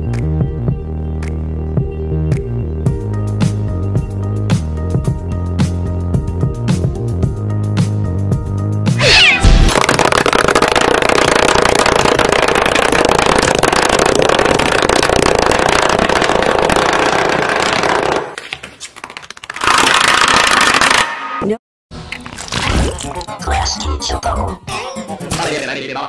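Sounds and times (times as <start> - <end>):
distorted pitch-shifted cat yowls: 9.0 - 9.7.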